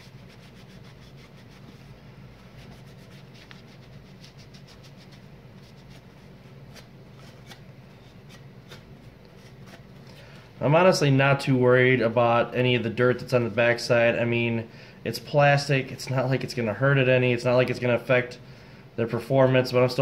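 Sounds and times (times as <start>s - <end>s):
paper towel wiping plastic: 0.0s - 9.9s.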